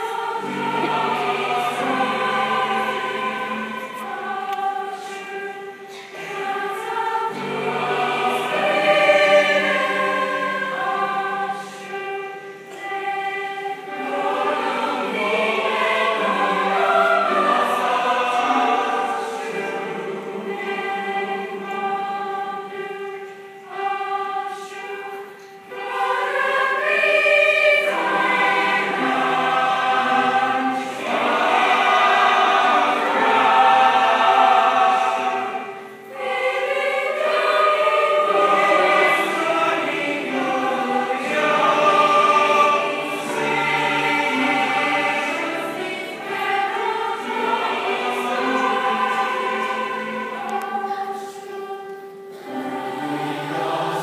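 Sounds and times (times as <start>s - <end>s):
choir singing: 0.0s - 54.0s
grand piano accompaniment: 0.0s - 54.0s.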